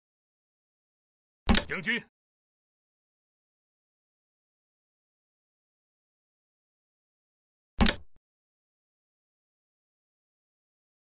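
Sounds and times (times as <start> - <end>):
recorded voice call: 1.5 - 2.1.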